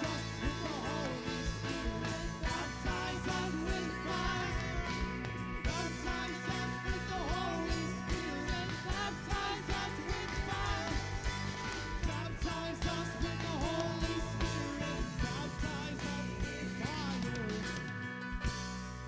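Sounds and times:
people singing: 0:00.0 - 0:17.6
keyboard chords: 0:00.0 - 0:19.0.

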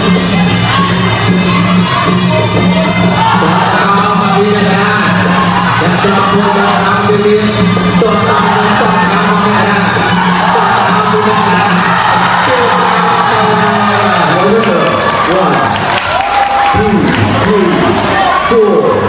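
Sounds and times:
drums: 0:00.0 - 0:14.4
crowd cheering and shouting: 0:00.0 - 0:19.0.

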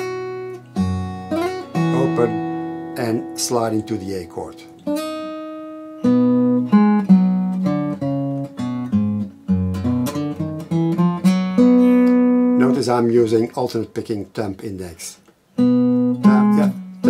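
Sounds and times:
fingerpicked acoustic guitar: 0:00.0 - 0:14.6, 0:15.2 - 0:17.0.

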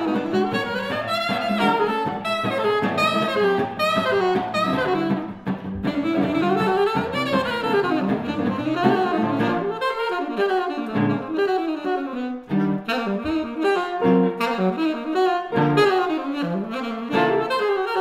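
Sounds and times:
guitar chords: 0:00.0 - 0:18.0
saxophone playing jazz: 0:00.0 - 0:18.0.

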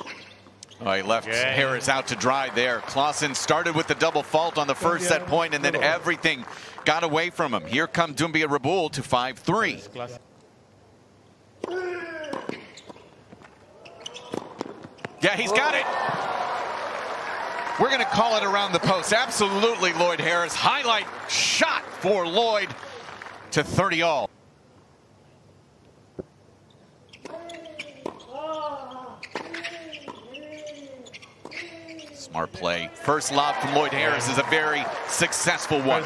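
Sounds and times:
ball bouncing on hard court: 0:14.1 - 0:15.2.

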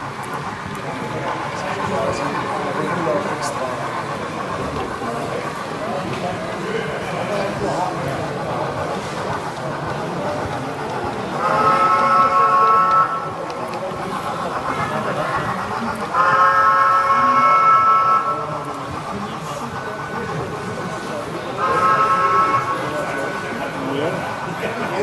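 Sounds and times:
murmur of crowd in hall: 0:00.0 - 0:25.0.

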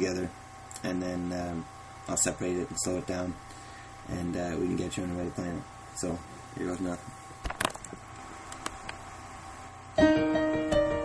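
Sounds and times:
digital piano riff: 0:10.0 - 0:11.0.

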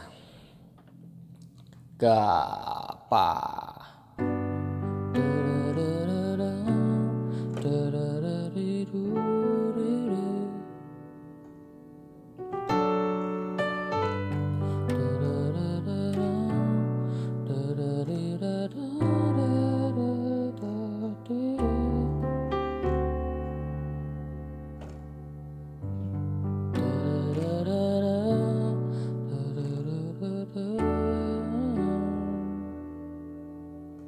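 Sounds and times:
slow piano piece: 0:00.0 - 0:34.0.

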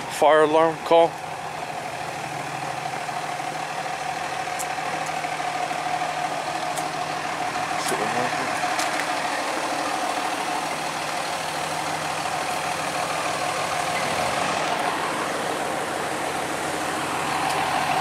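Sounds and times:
fire engine idling: 0:00.0 - 0:18.0.

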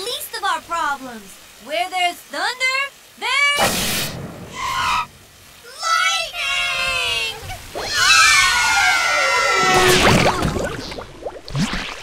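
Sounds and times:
cartoon voices crying out: 0:05.7 - 0:10.6.

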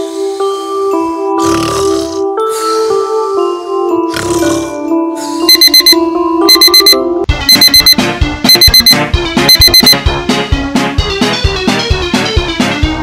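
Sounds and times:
digital alarm clock beeping: 0:05.5 - 0:10.0.

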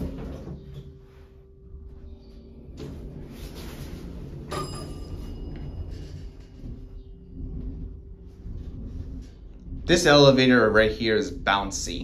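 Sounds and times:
elevator drive rumble and hum: 0:00.0 - 0:12.0
ringing knock: 0:04.5 - 0:07.1.

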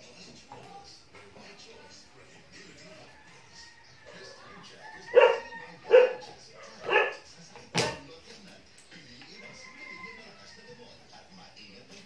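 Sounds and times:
dog barking: 0:05.1 - 0:07.3.

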